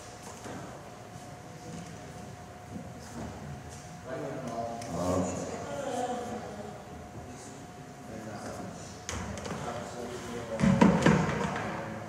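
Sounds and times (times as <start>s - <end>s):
plastic buckets knocking: 10.6s - 11.7s.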